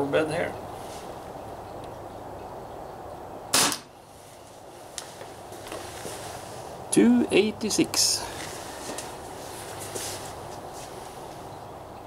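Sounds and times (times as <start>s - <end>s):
air pistol shot: 3.5s - 3.9s.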